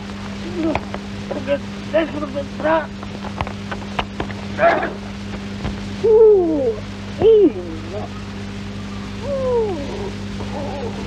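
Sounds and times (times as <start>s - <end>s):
long hoot falling in pitch: 6.0s - 11.0s.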